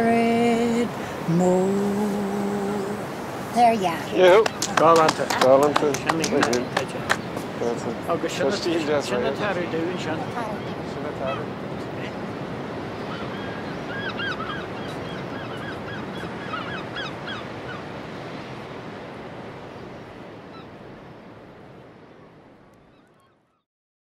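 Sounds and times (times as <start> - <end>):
steady noise haze: 0.0 - 13.0.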